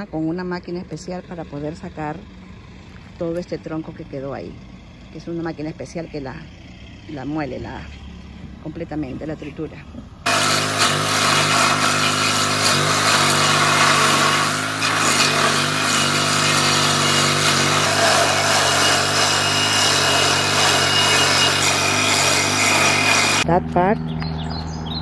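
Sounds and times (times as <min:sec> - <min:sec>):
cutter wheel grinding tree stump: 0:00.0 - 0:23.6
stump grinder engine droning: 0:00.0 - 0:23.9.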